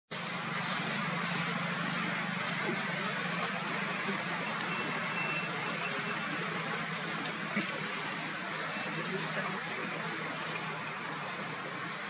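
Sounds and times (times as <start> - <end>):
constant low hum: 0.1 - 12.0.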